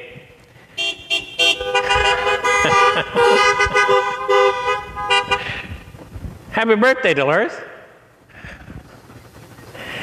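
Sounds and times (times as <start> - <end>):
car horns honking: 0.7 - 5.9.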